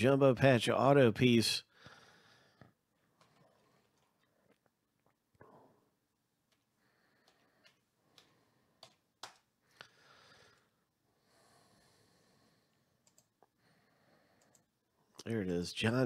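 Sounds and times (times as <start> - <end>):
computer mouse clicking: 7.2 - 9.5, 13.0 - 13.4, 14.4 - 14.7.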